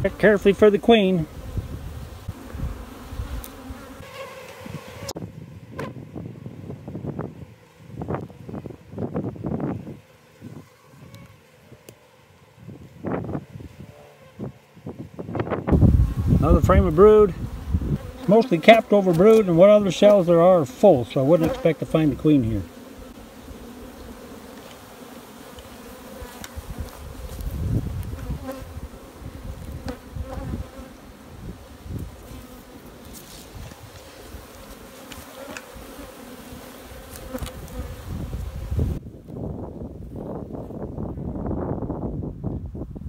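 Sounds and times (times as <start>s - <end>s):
honeybees buzzing: 0.0s - 39.2s.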